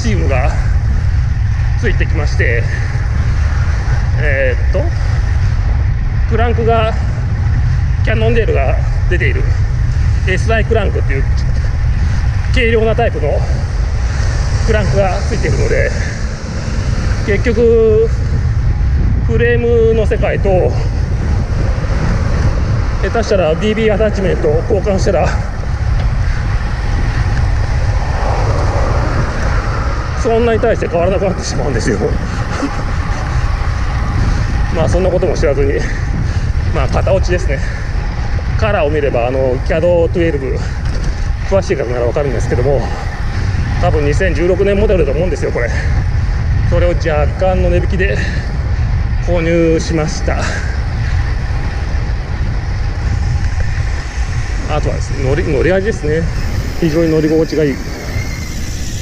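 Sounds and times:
car passing: 0.0s - 59.0s
road noise: 0.0s - 59.0s
wind buffeting microphone: 0.0s - 59.0s.

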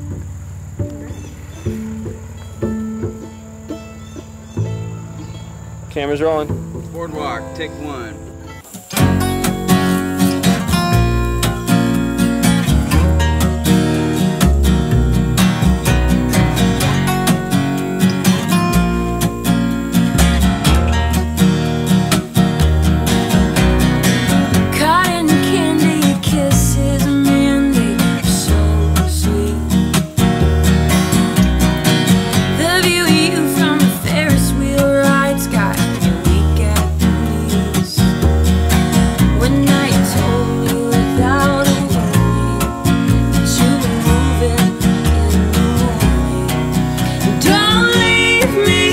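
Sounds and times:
strummed acoustic guitars: 0.0s - 48.9s
upright bass: 0.0s - 48.9s
woman singing: 24.6s - 30.1s, 32.4s - 38.2s, 39.2s - 48.9s.

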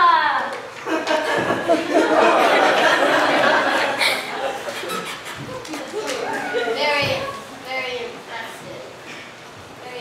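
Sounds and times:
children speaking: 2.0s - 9.2s.

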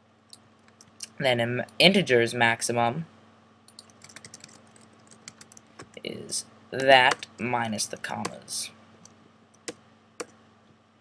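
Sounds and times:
keyboard typing: 3.7s - 6.0s, 6.8s - 7.4s.

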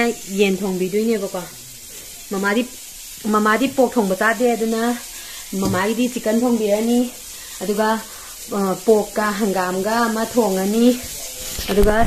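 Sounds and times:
woman talking: 0.0s - 1.5s, 2.3s - 12.0s
faint steady hiss: 0.0s - 12.0s.

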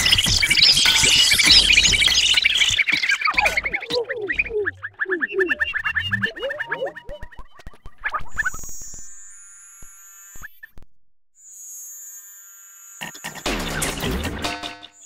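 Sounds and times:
electronic chirps and clicks: 0.0s - 9.2s
high held synthesizer tones: 0.0s - 9.8s.

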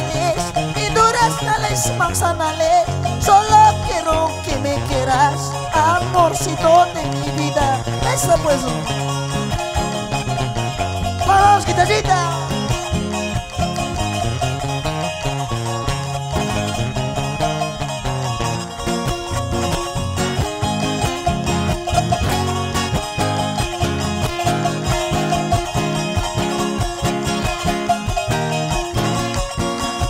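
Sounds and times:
bass line: 0.0s - 30.0s
guitar and charango strumming: 0.0s - 30.0s.

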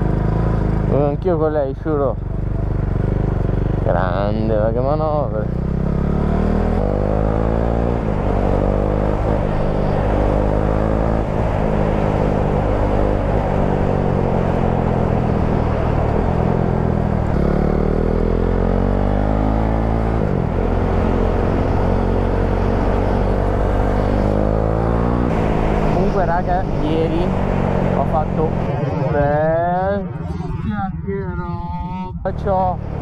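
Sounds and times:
motorcycle engine accelerating: 0.0s - 33.0s.

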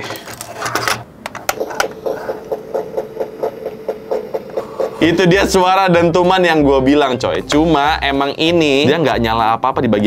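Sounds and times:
electronic drumbeats: 1.9s - 6.5s.

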